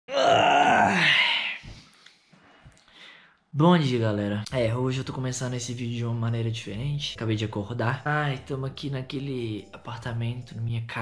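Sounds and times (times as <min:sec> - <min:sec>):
man groaning: 0:00.1 - 0:01.6.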